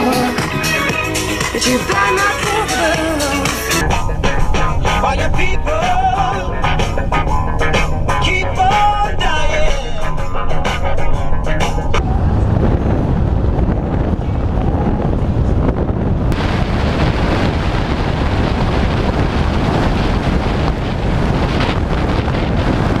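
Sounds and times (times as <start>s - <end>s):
music: 0.0s - 12.0s
vehicle rumble: 0.0s - 23.0s
wet road noise: 0.0s - 23.0s
wind buffeting microphone: 0.0s - 23.0s.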